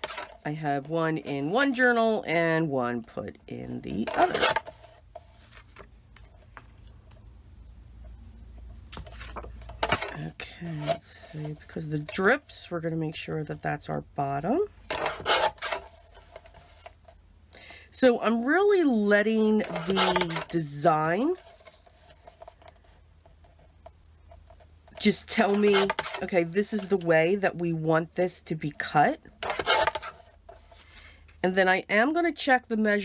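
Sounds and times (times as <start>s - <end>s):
faint rustling of card: 4.2s - 12.3s
paper trimmer blade rasping: 29.4s - 30.2s.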